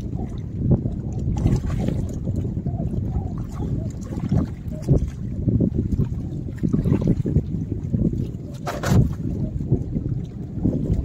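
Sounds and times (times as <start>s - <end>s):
water lapping against rocks: 0.0s - 11.0s
wind buffeting microphone: 0.0s - 11.0s.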